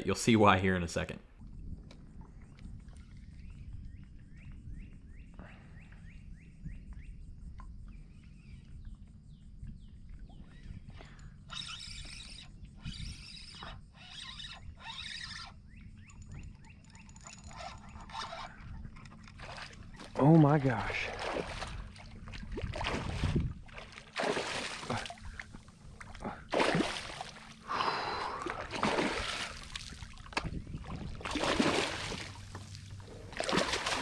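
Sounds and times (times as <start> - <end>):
wind rumble on microphone: 0.0 - 24.0, 27.9 - 33.4
bird chirping: 2.4 - 20.1.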